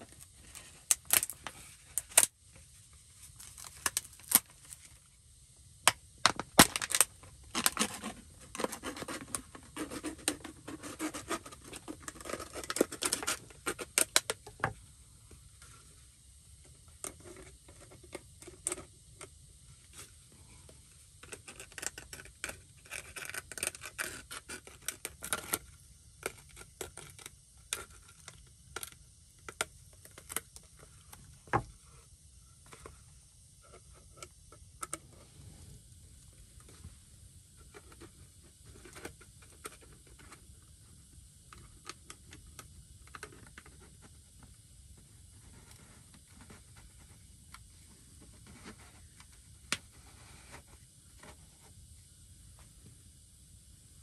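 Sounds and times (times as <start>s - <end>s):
plastic crinkling: 3.3s - 4.8s, 6.2s - 14.3s.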